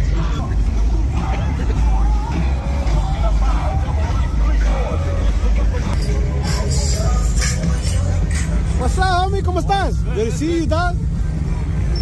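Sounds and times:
car engines droning: 0.0 - 12.0
people chattering: 0.0 - 12.0.

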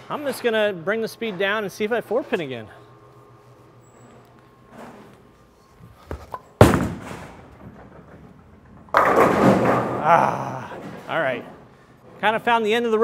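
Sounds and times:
bowling ball thudding and rolling: 5.9 - 11.7
bowling pins crashing: 6.1 - 11.7.

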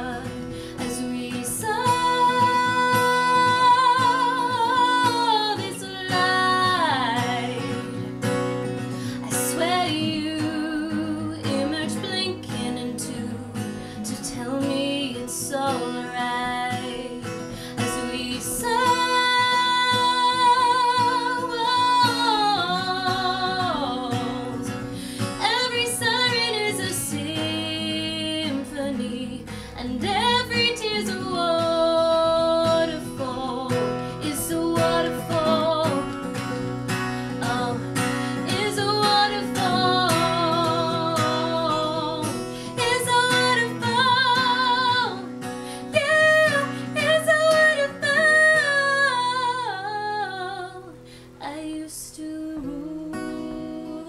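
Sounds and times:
strummed acoustic guitar: 0.0 - 54.0.

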